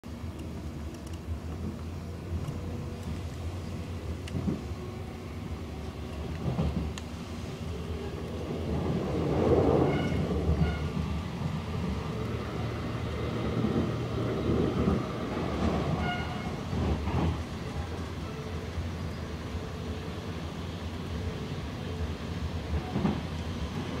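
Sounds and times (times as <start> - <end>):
train rumbling: 0.0 - 24.0.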